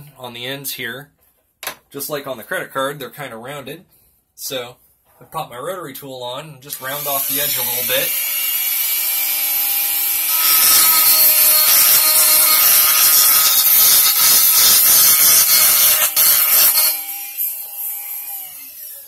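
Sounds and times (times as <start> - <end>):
rotary tool grinding acrylic: 7.0 - 19.0.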